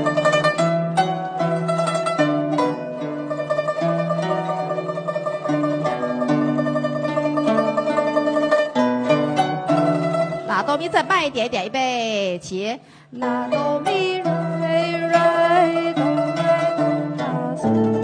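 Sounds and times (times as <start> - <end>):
guzheng playing: 0.0 - 12.5, 13.2 - 18.0.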